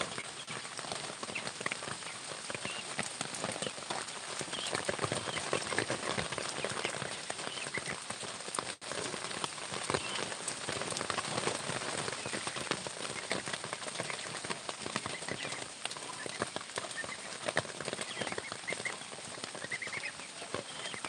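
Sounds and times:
steady rain pattering: 0.0 - 21.0.

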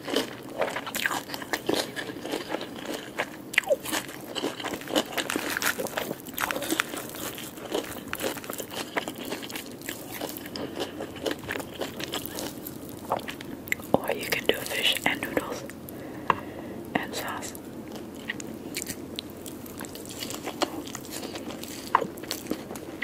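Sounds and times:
chewing: 0.0 - 15.8, 17.5 - 23.0.

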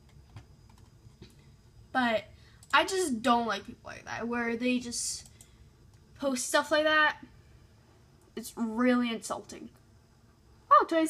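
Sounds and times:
computer mouse clicks: 0.0 - 1.4, 5.2 - 6.0.

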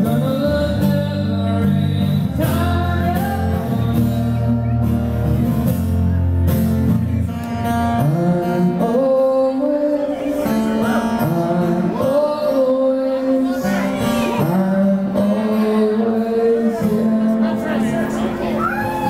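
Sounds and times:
man singing: 0.0 - 5.5, 7.2 - 18.3
acoustic guitar strumming: 0.0 - 19.0.

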